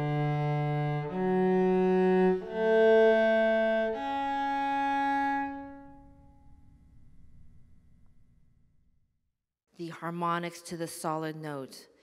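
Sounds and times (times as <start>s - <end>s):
cello slow bowed notes: 0.0s - 8.4s.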